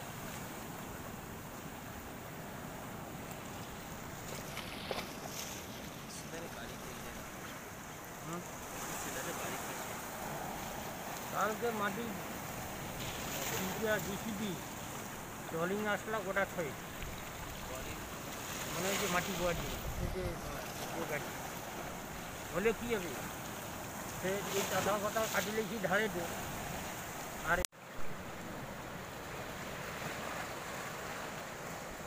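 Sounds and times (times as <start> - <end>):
rough waves: 0.0 - 32.0
sea water rushing: 0.0 - 32.0
wind buffeting microphone: 19.5 - 20.6
wind on microphone: 19.5 - 22.4.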